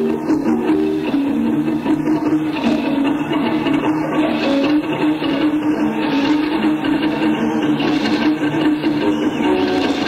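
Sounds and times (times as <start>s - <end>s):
cassette tape hiss: 0.0s - 10.0s
electric guitar with delay echoes: 0.0s - 10.0s.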